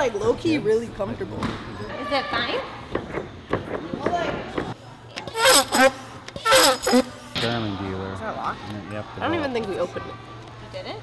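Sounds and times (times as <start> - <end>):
loud excited calls or laughs: 5.4 - 7.1.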